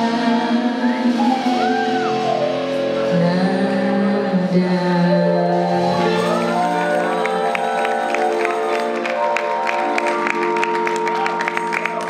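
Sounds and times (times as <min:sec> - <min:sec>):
audience clapping and cheering: 0:06.0 - 0:12.0.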